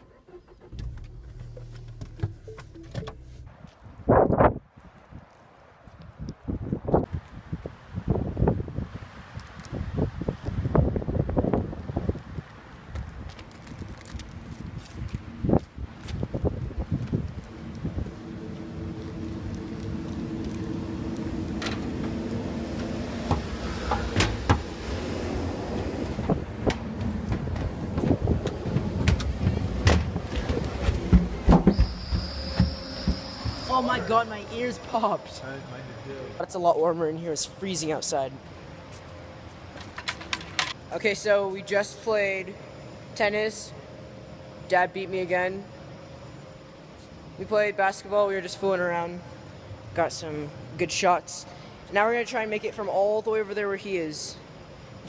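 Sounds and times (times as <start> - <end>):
car door shutting: 0.1 - 3.5, 21.5 - 25.0, 26.0 - 33.9
footsteps on hard paving: 12.2 - 17.5, 26.4 - 33.7
steady hum: 15.2 - 55.0.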